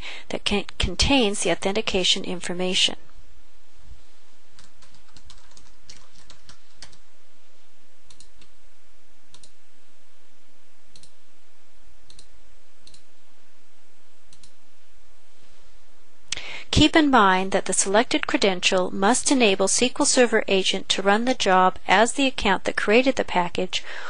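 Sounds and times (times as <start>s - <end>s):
keyboard typing: 4.6s - 7.0s.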